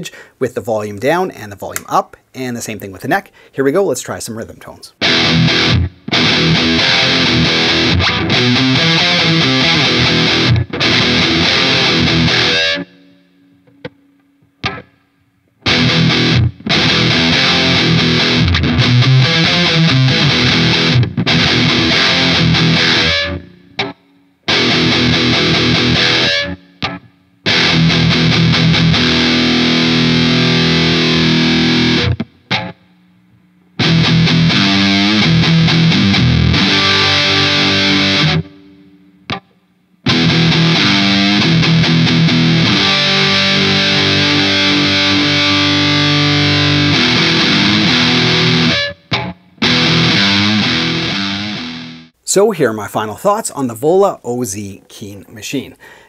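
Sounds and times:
distorted electric guitar riffs: 5.0s - 52.2s.

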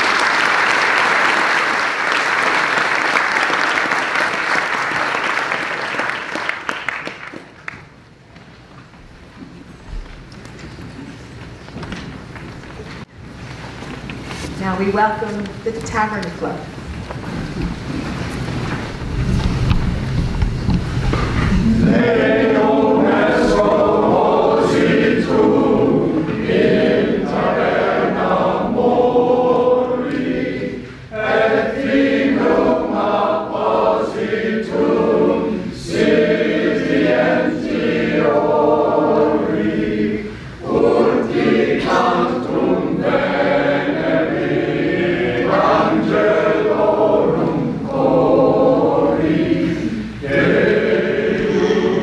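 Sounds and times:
choir singing: 21.4s - 52.0s.

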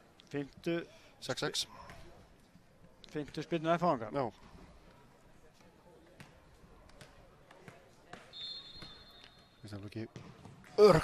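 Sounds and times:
faint stadium background: 0.0s - 11.0s
referee's whistle: 8.3s - 9.6s.

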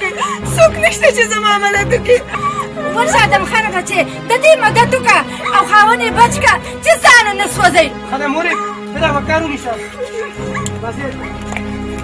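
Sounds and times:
film music with held tones: 0.0s - 12.0s.

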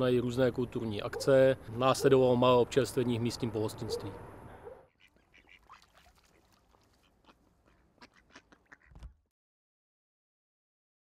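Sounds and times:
ducks quacking: 4.9s - 9.1s.

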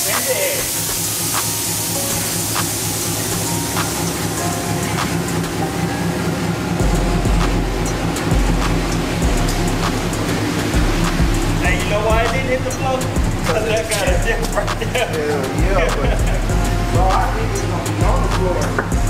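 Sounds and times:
air suspension deflating hiss: 0.0s - 18.9s
background music with a beat: 0.0s - 19.0s
deep bass: 0.6s - 19.0s.

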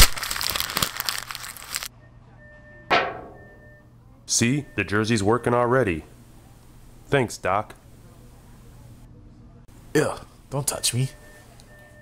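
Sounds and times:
sudden hit: 2.9s - 3.7s
sharp ringing strike: 2.9s - 3.8s.

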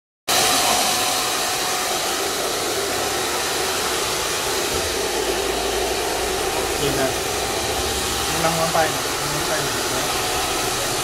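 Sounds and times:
hair dryer blowing: 0.3s - 11.0s.

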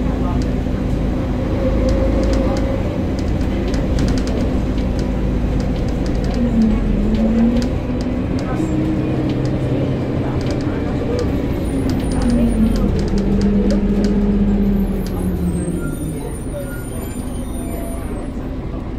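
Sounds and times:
bus engine running: 0.0s - 18.9s
interior rattles: 1.9s - 15.5s.

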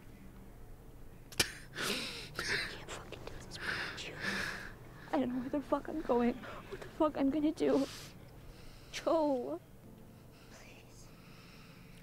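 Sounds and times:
very soft whispering: 2.3s - 6.6s, 10.4s - 11.3s.

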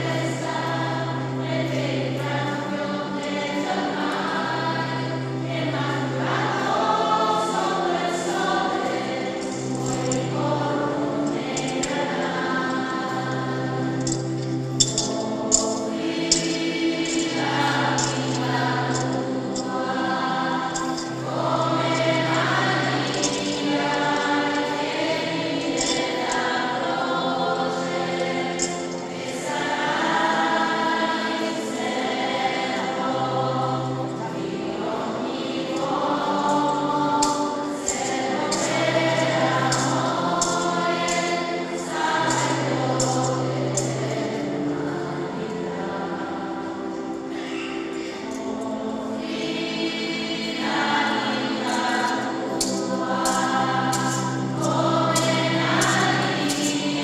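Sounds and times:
church choir singing a hymn: 0.0s - 57.0s.

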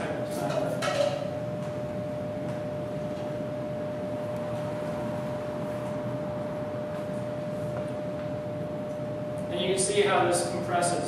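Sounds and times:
constant mid-pitched hum: 0.0s - 11.0s.

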